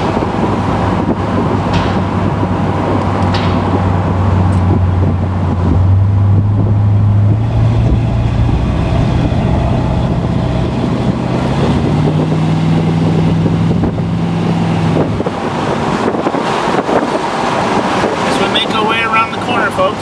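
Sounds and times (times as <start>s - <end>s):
wind noise: 0.0s - 18.8s
car engine drone: 0.0s - 20.0s
road noise: 0.0s - 20.0s.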